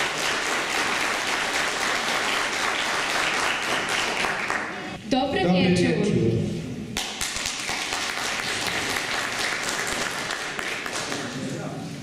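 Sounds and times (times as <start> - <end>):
audience applauding: 0.0 - 5.0, 7.0 - 11.6.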